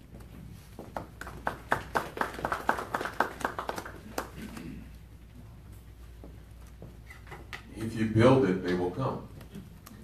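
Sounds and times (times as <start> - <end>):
people clapping: 0.8 - 5.0.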